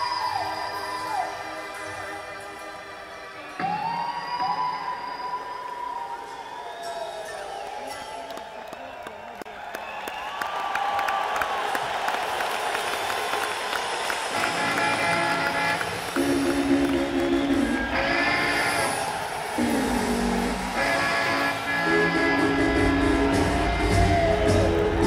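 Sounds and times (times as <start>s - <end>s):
crowd cheering and applauding: 3.3s - 25.0s
electric guitar chords: 14.3s - 25.0s
electric guitar gliding notes: 14.3s - 25.0s.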